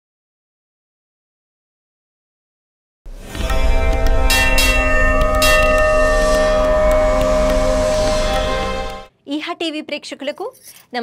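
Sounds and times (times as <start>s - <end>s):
bell struck and ringing: 3.2s - 9.1s.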